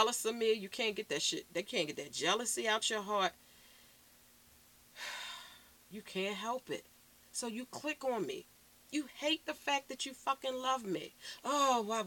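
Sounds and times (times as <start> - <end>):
woman's short breath: 5.0 - 5.7.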